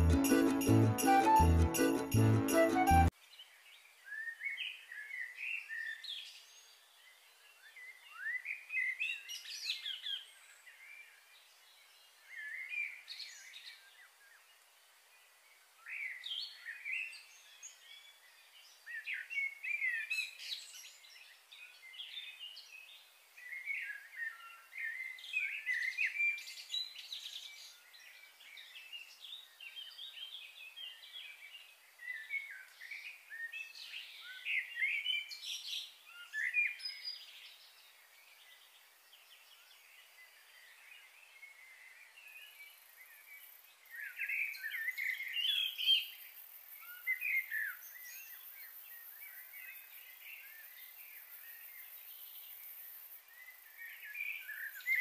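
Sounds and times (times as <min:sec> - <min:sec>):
small birds chirping: 0:03.2 - 0:55.0.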